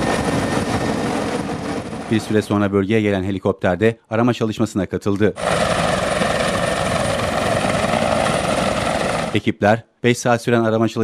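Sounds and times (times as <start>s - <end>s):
helicopter rotor chopping: 0.0s - 2.9s, 5.4s - 9.5s.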